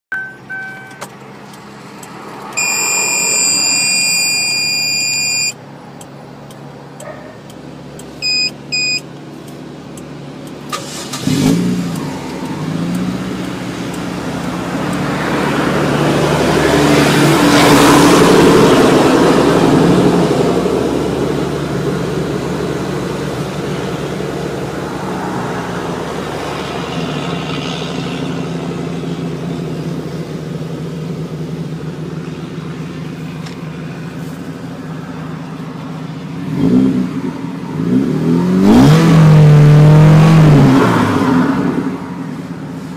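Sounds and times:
car engine starting and idling: 0.1s - 42.9s
short high electronic beeps: 2.6s - 5.6s, 8.2s - 9.0s.

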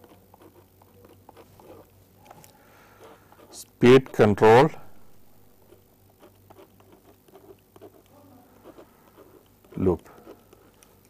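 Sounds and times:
pen scratching on paper: 0.0s - 1.9s, 2.9s - 11.0s
low electrical hum: 0.0s - 11.0s.

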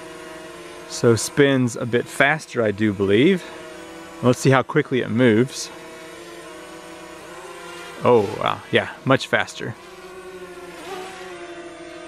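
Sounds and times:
drone propellers humming: 0.0s - 12.0s.

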